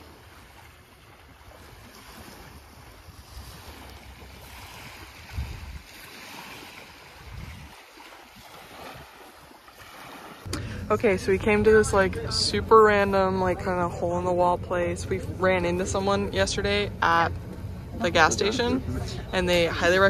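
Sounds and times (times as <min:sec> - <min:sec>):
small waves lapping on sand: 0:00.0 - 0:20.0
wind gusting on microphone: 0:02.0 - 0:09.2.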